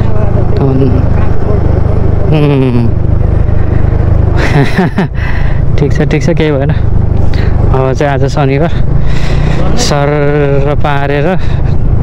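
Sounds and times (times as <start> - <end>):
scooter engine running: 0.0 - 12.0.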